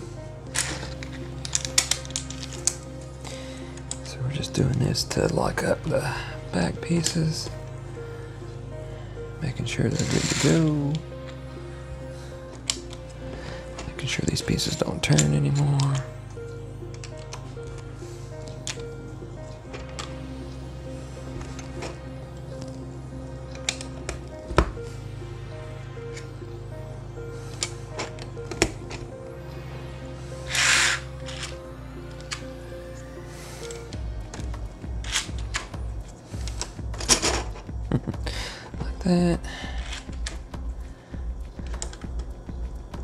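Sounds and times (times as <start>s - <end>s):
background music with pulsing beat: 0.0s - 43.0s.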